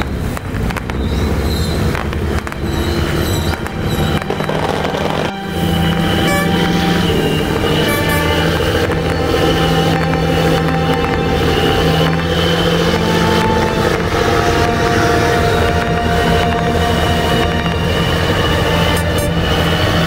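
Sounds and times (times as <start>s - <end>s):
boat engines running: 0.0s - 20.0s
boat horns blasting: 1.4s - 20.0s.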